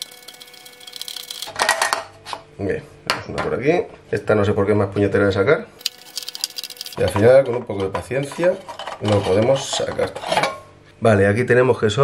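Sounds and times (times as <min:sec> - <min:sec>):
light bulb threads clicking: 0:05.8 - 0:07.1.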